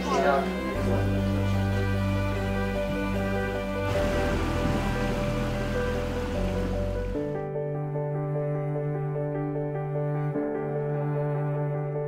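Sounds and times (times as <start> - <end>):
music of slow held notes: 0.0 - 12.0
steady rushing noise: 1.8 - 7.4.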